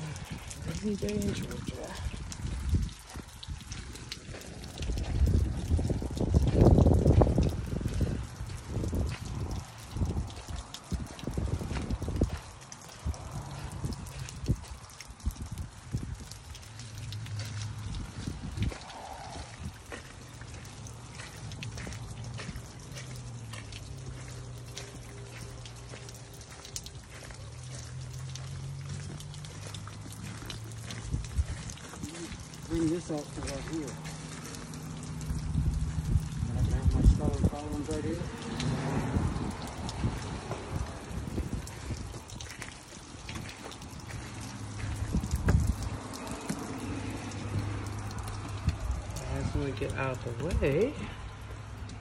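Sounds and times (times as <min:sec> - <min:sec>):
low rumbling: 0:00.0 - 0:52.0
rain on an umbrella: 0:00.0 - 0:52.0.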